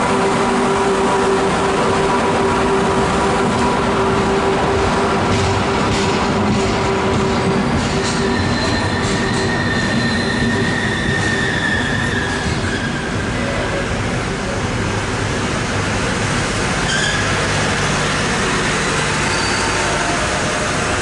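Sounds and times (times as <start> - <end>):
train coaches rumbling: 0.0 - 21.0
high wheel squeal: 7.8 - 13.3, 16.8 - 17.5, 19.2 - 20.8.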